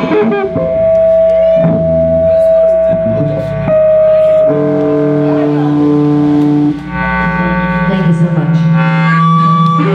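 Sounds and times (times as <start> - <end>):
live band droning notes: 0.0 - 9.9.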